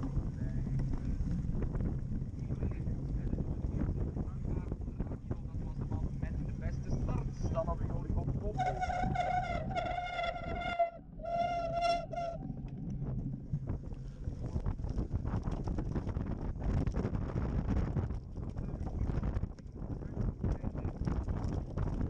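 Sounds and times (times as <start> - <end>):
bike frame and wheels rattling: 0.0 - 22.0
wind buffeting microphone: 0.0 - 22.0.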